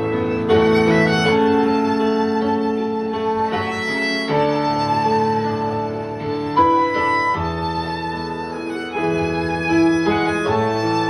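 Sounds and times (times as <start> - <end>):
violin long held notes: 0.0 - 11.0.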